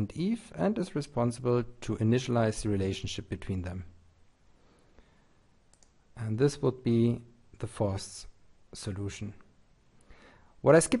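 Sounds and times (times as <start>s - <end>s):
computer mouse clicks: 5.7s - 6.0s.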